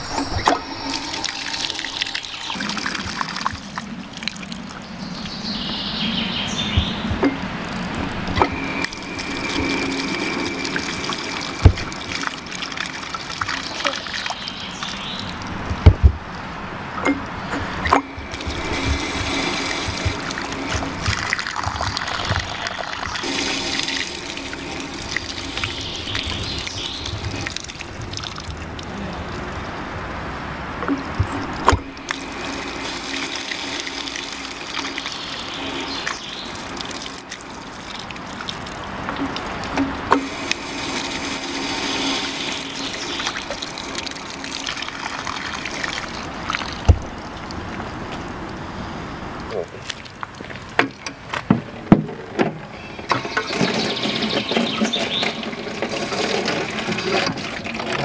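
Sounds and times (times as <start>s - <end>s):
water splashing on metal grate: 6.7s - 48.6s, 49.4s - 58.0s.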